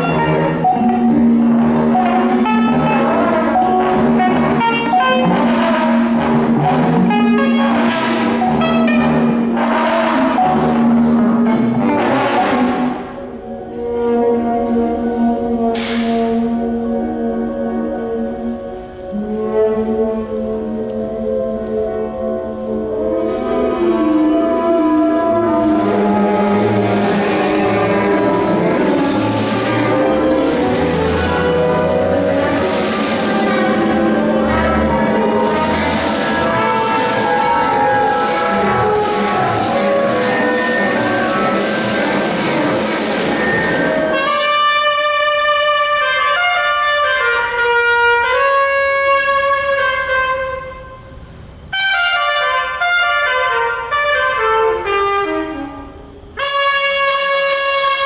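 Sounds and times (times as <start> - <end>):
sustained low note: 0.0 - 44.4
improvising ensemble playing: 0.0 - 58.0.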